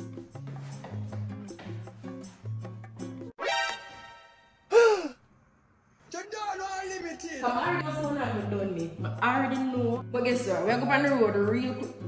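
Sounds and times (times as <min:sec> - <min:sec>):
gasp-like exclamation: 0:04.7 - 0:05.2.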